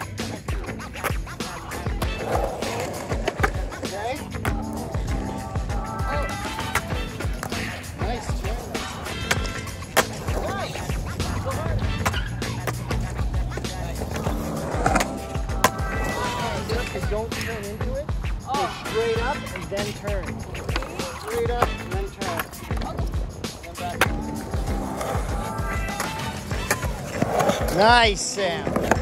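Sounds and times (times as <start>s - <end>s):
background music with beat: 0.0s - 29.0s
skateboard clacks: 0.0s - 29.0s
skateboard wheels rolling on concrete: 0.0s - 29.0s.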